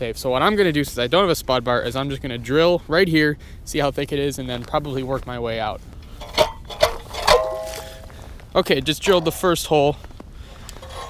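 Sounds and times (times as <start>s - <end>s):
short metallic ring: 6.1s - 8.1s.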